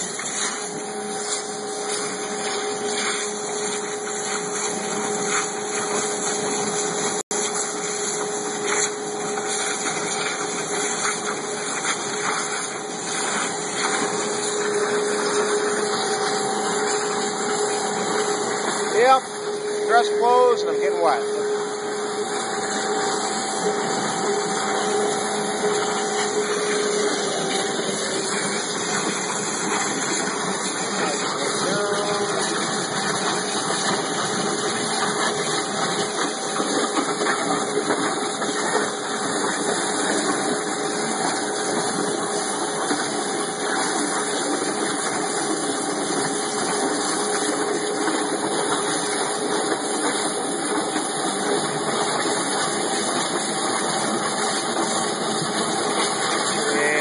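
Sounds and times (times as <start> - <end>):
water jet cutter hissing: 0.0 - 57.0.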